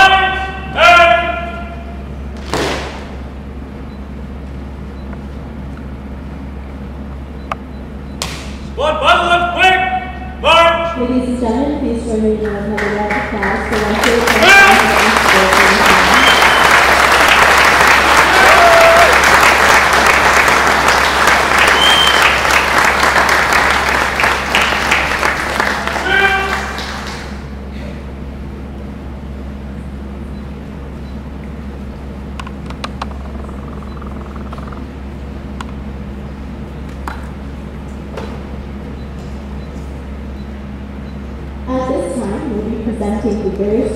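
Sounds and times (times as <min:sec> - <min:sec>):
steady low hum: 0:00.0 - 0:43.9
voices calling out: 0:12.6 - 0:22.6, 0:23.6 - 0:27.3
audience applauding: 0:12.8 - 0:27.5.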